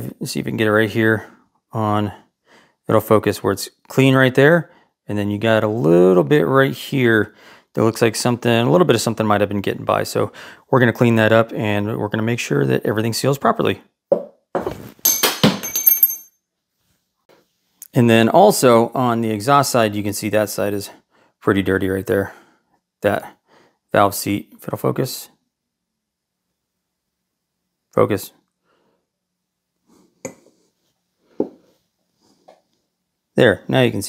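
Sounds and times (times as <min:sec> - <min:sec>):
metal part clinking on bench: 0:15.1 - 0:16.3.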